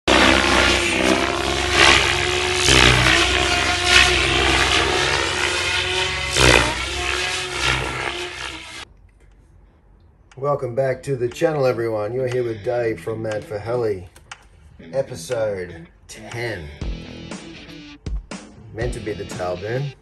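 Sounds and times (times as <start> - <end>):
channel intro soundtrack: 0.0 - 8.8.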